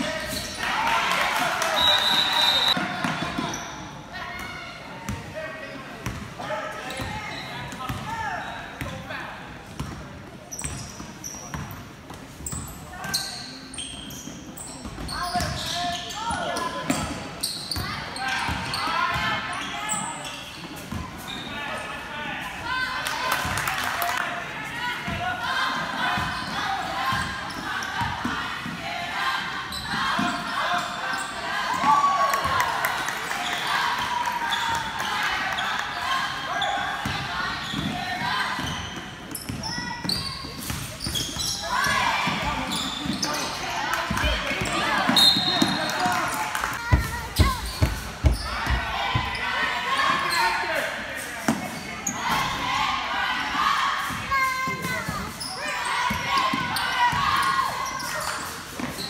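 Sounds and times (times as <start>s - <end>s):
voices of players and spectators: 0.0s - 59.0s.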